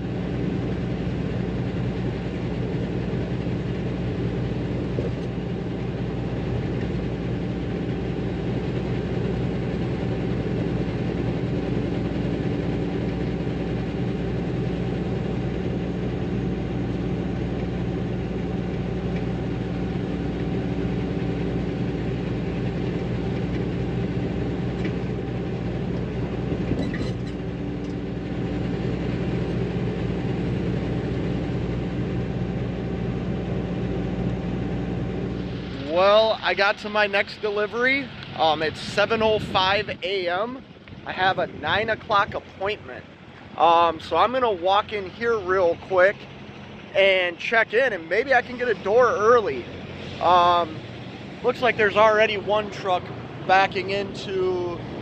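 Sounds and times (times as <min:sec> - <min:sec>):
diesel truck engine cruising: 0:00.0 - 0:55.0
road noise: 0:00.0 - 0:55.0.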